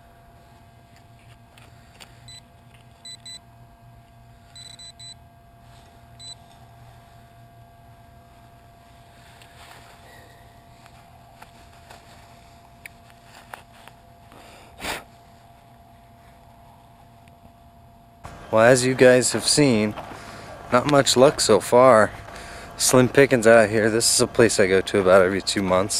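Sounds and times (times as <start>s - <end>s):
metal detector beeping: 2.3s - 3.4s, 4.5s - 5.2s, 6.2s - 6.4s.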